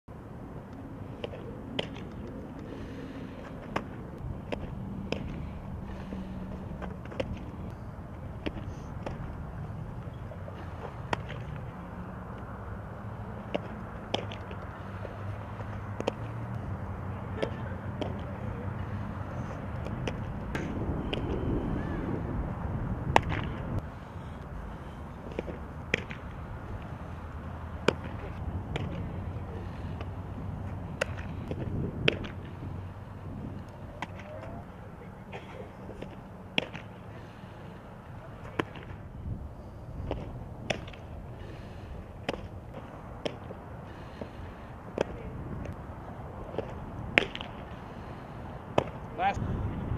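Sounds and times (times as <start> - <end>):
steady low hum: 0.1 - 49.9
softballs striking catcher's mitt: 3.7 - 5.4, 11.0 - 11.7, 13.4 - 14.7, 15.9 - 16.3, 17.3 - 18.3, 23.1 - 23.6, 25.3 - 26.9, 27.8 - 29.1, 30.9 - 32.5, 36.0 - 37.0, 38.4 - 39.0, 40.0 - 41.0, 42.2 - 43.5, 44.9 - 45.8, 46.5 - 47.6, 48.7 - 49.0.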